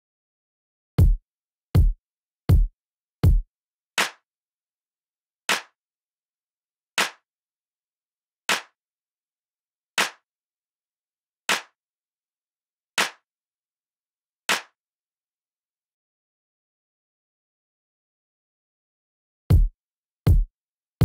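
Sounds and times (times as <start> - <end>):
hand claps: 8.5 - 8.8, 10.0 - 10.2, 11.5 - 11.8, 13.0 - 13.2, 14.5 - 14.8.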